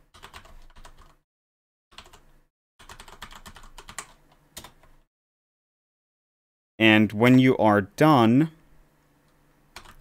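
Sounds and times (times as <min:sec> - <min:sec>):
computer keyboard typing: 0:00.1 - 0:01.2, 0:01.9 - 0:04.9, 0:09.8 - 0:10.0.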